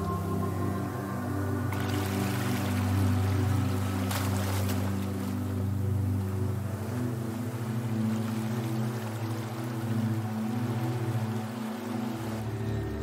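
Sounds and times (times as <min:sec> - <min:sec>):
ambient music with drone tones: 0:00.0 - 0:13.0.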